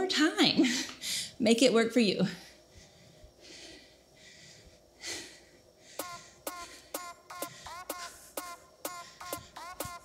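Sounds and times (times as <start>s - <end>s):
woman breathing hard: 0.6s - 1.4s, 2.2s - 9.7s
electronic dance music: 6.0s - 10.0s.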